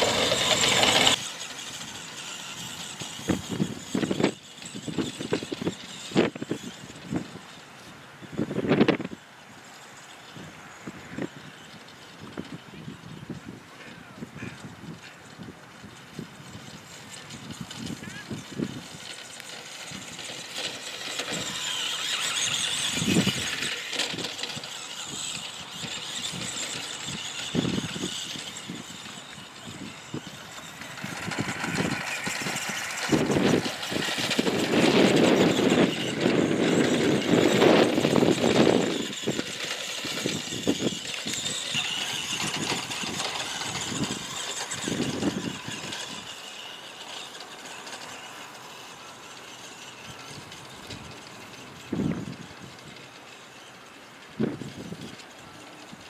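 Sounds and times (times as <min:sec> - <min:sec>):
toy truck electric drive whining: 0:00.0 - 0:56.0.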